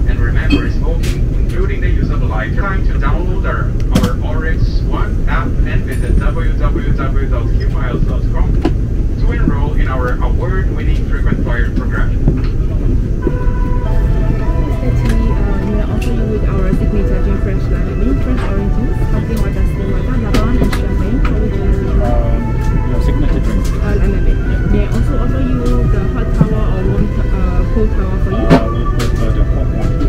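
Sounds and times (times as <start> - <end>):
airplane cabin low rumble: 0.0 - 30.0
indistinct voices talking: 0.0 - 30.0
ventilation system hum: 0.0 - 30.0.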